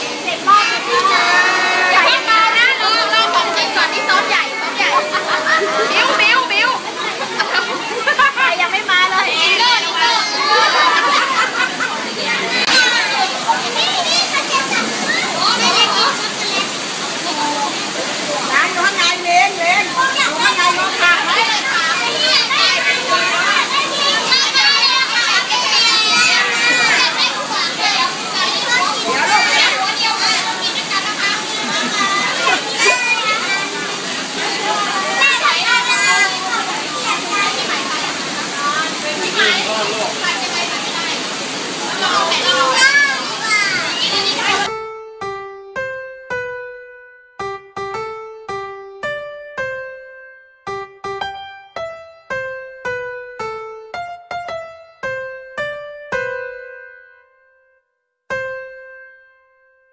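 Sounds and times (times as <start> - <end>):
young children chattering: 0.0 - 44.7.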